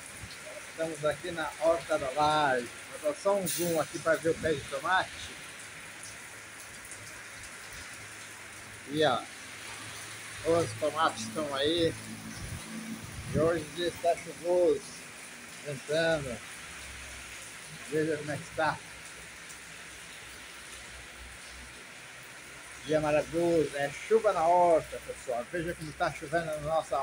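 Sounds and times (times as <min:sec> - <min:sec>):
rain on plants and concrete: 0:00.0 - 0:27.0.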